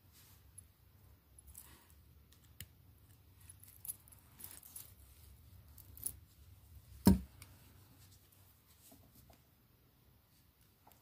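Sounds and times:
small metal parts clicking and rattling: 0:01.4 - 0:06.2.

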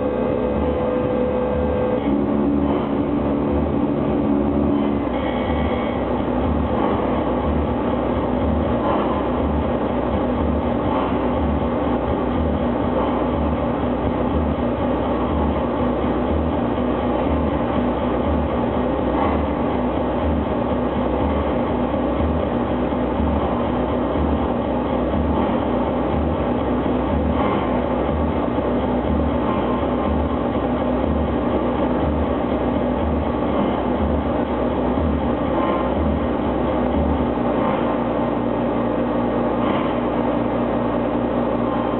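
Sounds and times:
faint steady hum: 0:00.0 - 0:41.9
wall of distorted noise: 0:00.0 - 0:41.9.

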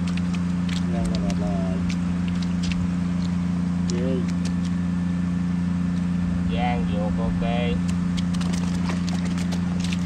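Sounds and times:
voices: 0:00.9 - 0:02.0.

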